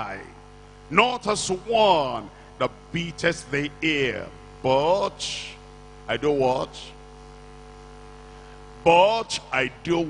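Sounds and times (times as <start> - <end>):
man preaching: 0.0 - 7.0, 8.8 - 10.0
steady electrical hum: 0.0 - 10.0.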